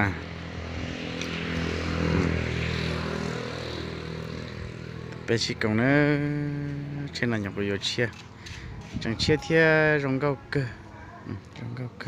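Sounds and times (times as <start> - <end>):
engine low hum: 0.0 - 9.0.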